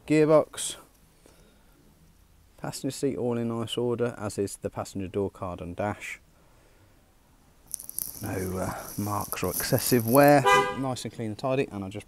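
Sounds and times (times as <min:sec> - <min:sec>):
faint high-pitched rustling: 0:07.7 - 0:10.8.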